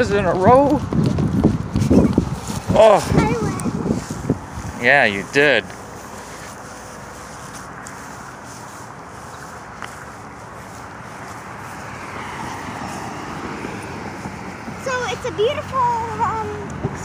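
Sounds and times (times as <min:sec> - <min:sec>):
tyres rushing on road: 0:00.0 - 0:17.0
wind on microphone: 0:00.0 - 0:17.0.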